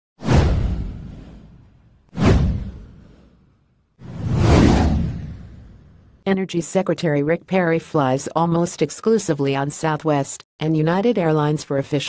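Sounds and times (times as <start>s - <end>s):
deep low boom: 0.2s - 3.3s
whoosh sound effect: 2.2s - 6.1s.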